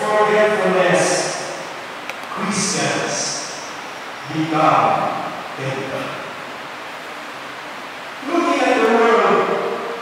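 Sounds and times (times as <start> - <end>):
room noise hiss in church: 0.0 - 10.0.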